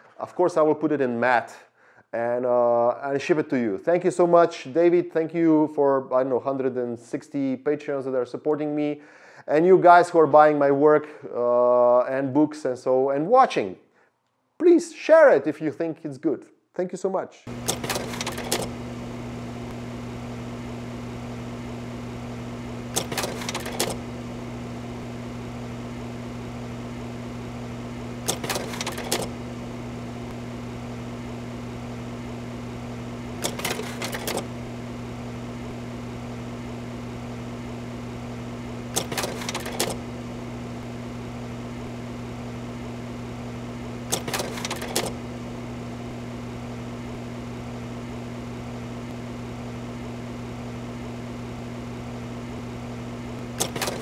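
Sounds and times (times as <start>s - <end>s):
sharp mechanical clicks: 17.5s - 18.8s, 22.9s - 24.0s, 28.2s - 29.4s, 33.3s - 34.5s, 38.9s - 40.0s, 44.1s - 45.2s, 53.4s - 54.0s
low machine hum: 17.5s - 54.0s.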